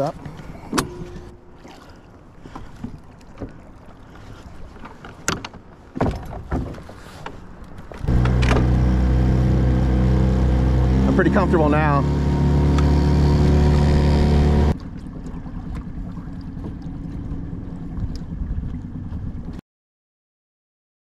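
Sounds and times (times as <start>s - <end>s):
knocks and clunks: 5.2s - 6.9s, 8.0s - 11.6s
outboard motor drone: 8.0s - 19.6s.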